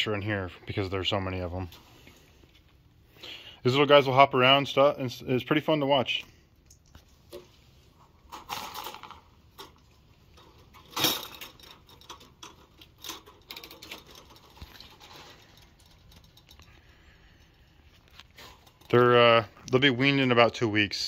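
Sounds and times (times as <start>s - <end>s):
clicks and rattles of wire cage: 8.0s - 16.9s, 18.1s - 19.1s.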